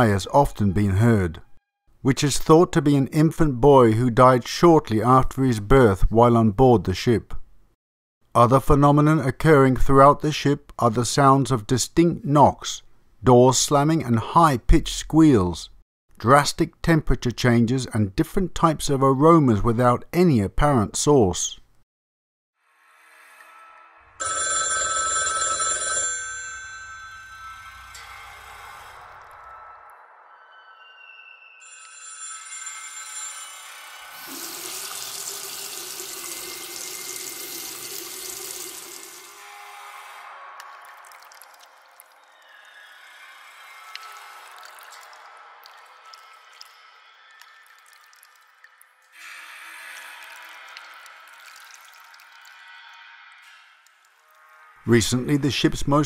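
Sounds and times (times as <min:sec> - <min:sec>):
eerie sound effects: 0:22.6 - 0:24.2, 0:27.1 - 0:35.3, 0:38.7 - 0:47.8, 0:52.2 - 0:56.0
telephone bell ringing: 0:24.2 - 0:28.5, 0:31.6 - 0:34.3
running water from a tap: 0:34.1 - 0:39.4, 0:50.2 - 0:52.6
quiet ambient music: 0:50.2 - 0:56.0.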